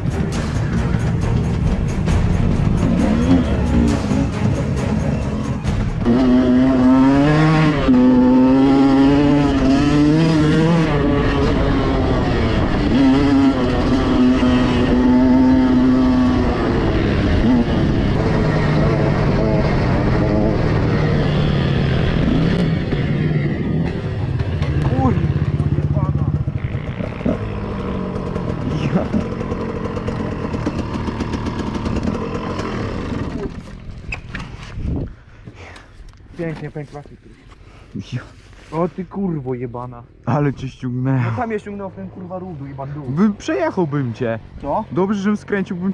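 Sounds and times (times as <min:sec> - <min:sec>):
motorcycle engine revving: 0:00.0 - 0:34.8.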